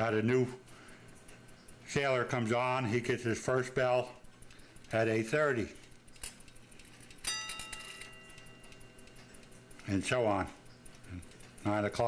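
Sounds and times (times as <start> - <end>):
faint clock movement clicks: 0.0 - 12.0
clock bell striking: 7.2 - 9.2.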